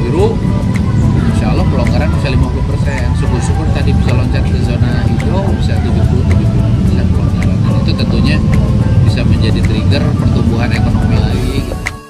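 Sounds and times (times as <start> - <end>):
loud low rumble: 0.0 - 11.8
indistinct talking: 0.0 - 12.0.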